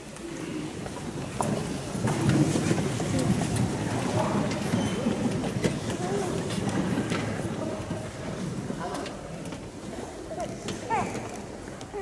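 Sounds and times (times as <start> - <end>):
murmur of audience voices: 0.0 - 12.0.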